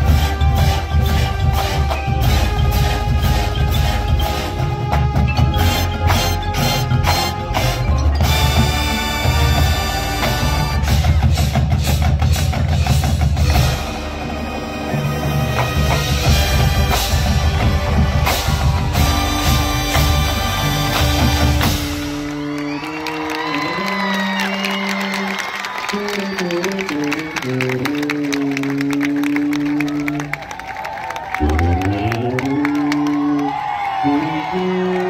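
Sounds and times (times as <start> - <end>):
rapid drum strokes: 0.0 - 22.2
marching band playing: 0.0 - 32.9.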